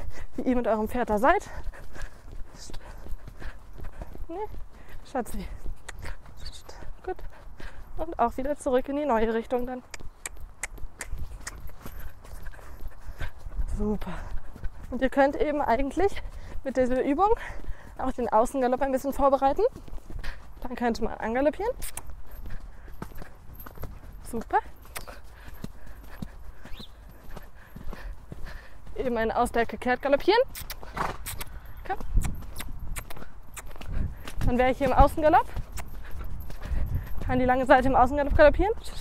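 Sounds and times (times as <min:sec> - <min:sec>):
hoofbeats on wet sand: 0:00.0 - 0:39.0.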